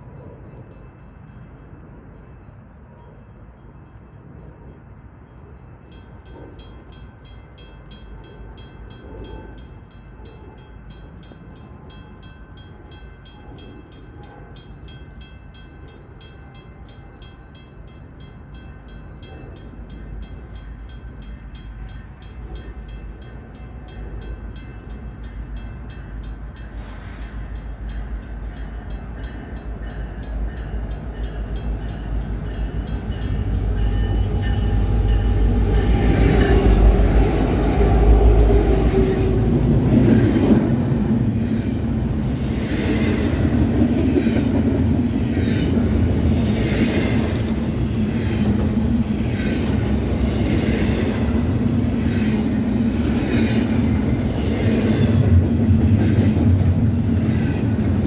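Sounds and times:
train engine rumble: 0.0s - 58.0s.

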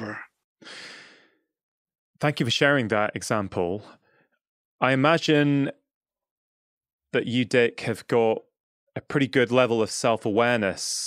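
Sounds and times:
man sighing: 0.0s - 1.3s.

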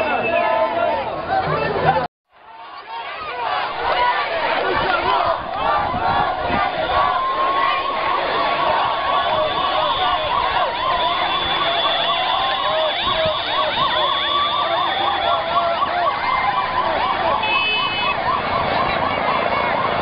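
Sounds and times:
crowd noise: 0.0s - 20.0s
women ululating: 2.8s - 20.0s.

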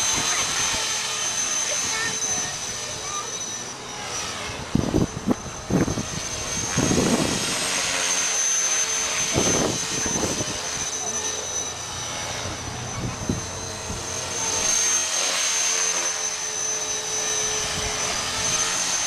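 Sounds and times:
helicopter motor whine: 0.0s - 19.0s
rotor rush: 0.0s - 19.0s.

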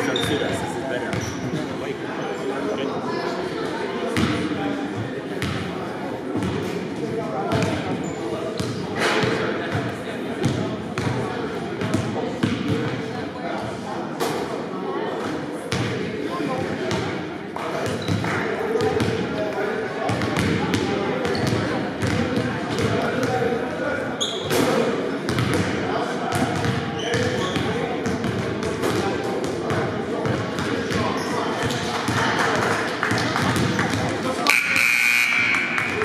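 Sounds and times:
chatter of players' voices: 0.0s - 36.0s
basketballs bouncing on wooden floor: 26.3s - 27.3s.

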